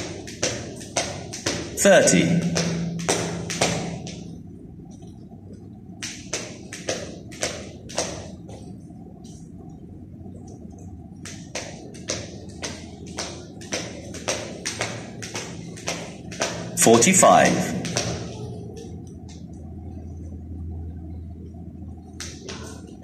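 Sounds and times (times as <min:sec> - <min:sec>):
skipping rope taps on tiled floor: 0:00.0 - 0:01.8, 0:02.4 - 0:04.3, 0:06.0 - 0:08.3, 0:11.2 - 0:16.8, 0:17.7 - 0:19.5, 0:22.2 - 0:23.0
low room hum: 0:00.0 - 0:23.0.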